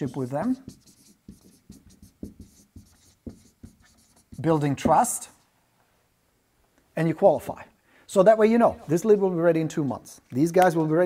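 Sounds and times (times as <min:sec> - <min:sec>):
marker writing on whiteboard: 0:00.0 - 0:05.4.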